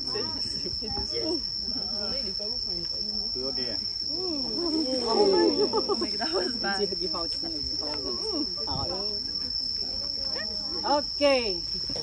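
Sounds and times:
insects droning: 0:00.0 - 0:12.0
people talking: 0:00.0 - 0:12.0.

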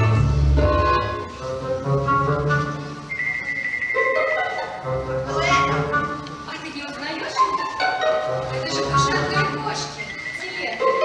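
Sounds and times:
instrumental dance music: 0:00.0 - 0:11.0.

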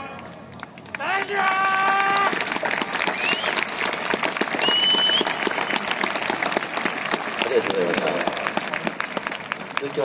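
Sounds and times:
stadium crowd applauding: 0:00.0 - 0:10.0.

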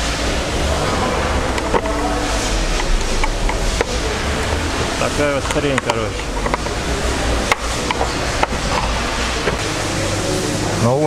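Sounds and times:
low rumble: 0:00.0 - 0:10.2.

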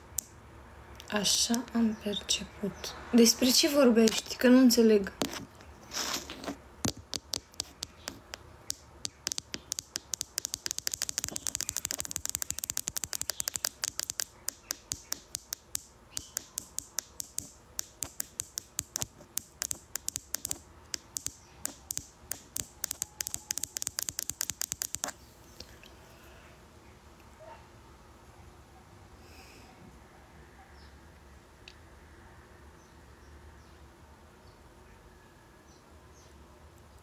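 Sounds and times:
fingernails tapping on touchscreen: 0:06.8 - 0:25.2.

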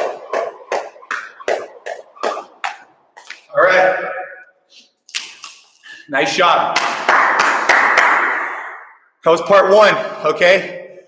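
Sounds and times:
jump rope slapping floor: 0:00.0 - 0:03.5.

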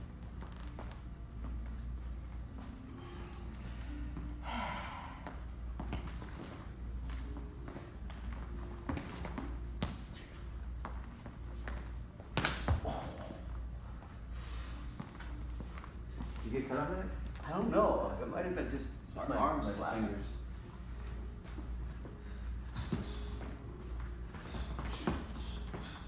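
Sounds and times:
low room hum: 0:00.0 - 0:26.0
heavy breathing: 0:02.8 - 0:05.8, 0:12.8 - 0:16.4, 0:22.0 - 0:26.0.

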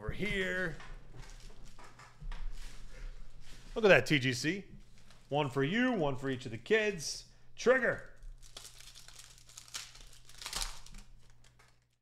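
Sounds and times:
foil wrapper tearing and crinkling: 0:08.3 - 0:12.0.

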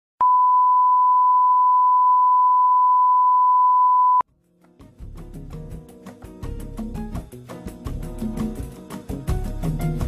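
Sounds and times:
steady test tone beep: 0:00.2 - 0:04.2.

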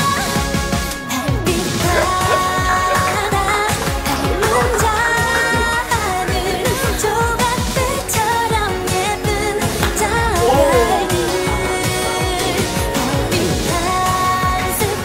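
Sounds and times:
pop song with singing: 0:00.0 - 0:15.0.

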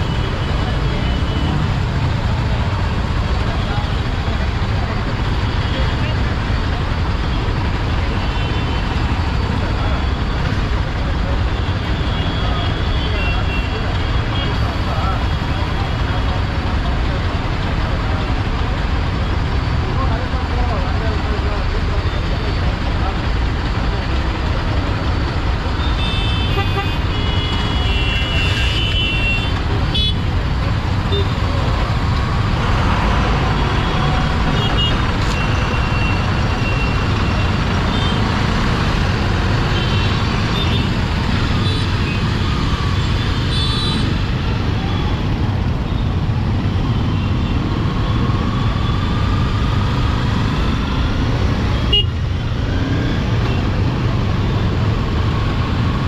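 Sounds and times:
low rumble of traffic engines: 0:00.0 - 0:56.0
vehicle horns tooting: 0:25.8 - 0:30.2, 0:51.8 - 0:52.2.

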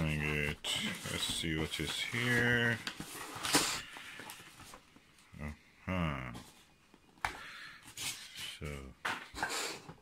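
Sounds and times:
paper wrapping rustling and tearing: 0:00.0 - 0:05.0.

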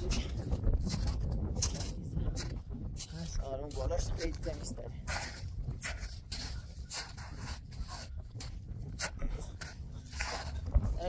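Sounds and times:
footsteps crunching on snow: 0:00.0 - 0:11.0
low wind rumble on microphone: 0:00.0 - 0:11.0.

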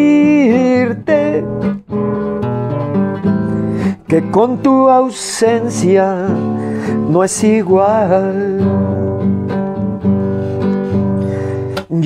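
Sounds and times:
person singing: 0:00.0 - 0:01.8, 0:03.8 - 0:09.6, 0:11.0 - 0:12.0
nylon-string guitar strumming chords: 0:00.0 - 0:12.0.

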